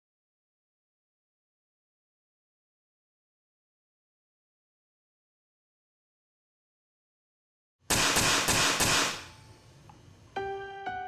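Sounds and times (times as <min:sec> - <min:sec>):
pneumatic pinner firing: 0:07.9 - 0:09.5.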